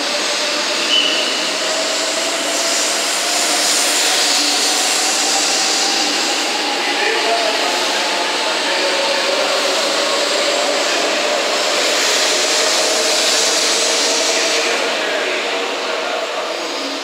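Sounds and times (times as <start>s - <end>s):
train wheel and air rush: 0.0s - 17.0s
train whine: 0.0s - 17.0s.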